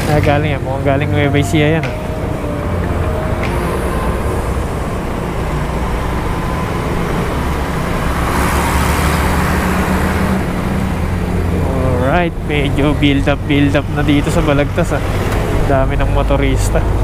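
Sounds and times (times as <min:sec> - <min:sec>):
scooter engine hum: 0:00.0 - 0:17.0
wind and road noise: 0:00.0 - 0:17.0.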